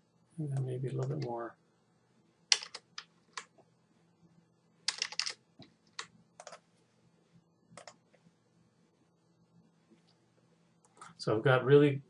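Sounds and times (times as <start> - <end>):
keyboard keystrokes: 2.5 - 3.5, 4.9 - 6.6, 7.8 - 8.0.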